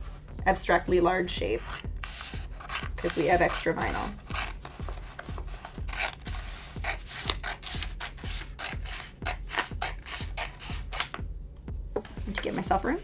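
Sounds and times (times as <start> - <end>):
scissors snipping vinyl: 1.6 - 11.2.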